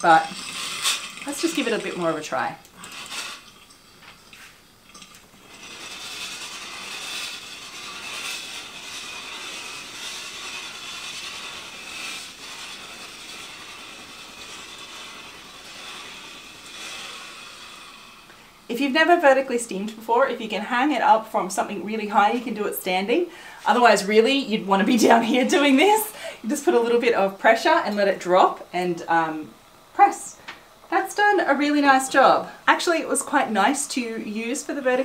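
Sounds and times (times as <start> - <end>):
steam iron hissing: 0.0 - 3.6, 4.4 - 19.5.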